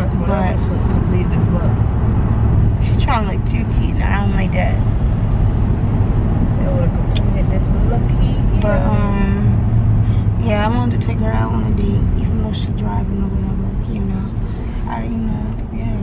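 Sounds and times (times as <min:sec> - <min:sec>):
person speaking: 0:00.0 - 0:01.8
car road rumble: 0:00.0 - 0:16.0.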